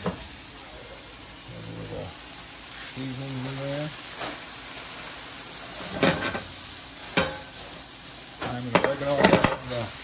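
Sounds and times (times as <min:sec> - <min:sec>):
food sizzling in a frying pan: 0:00.0 - 0:10.0.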